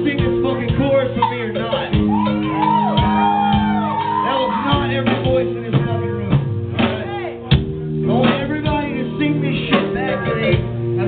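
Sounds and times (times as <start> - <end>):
drums and bass: 0.0 - 11.0.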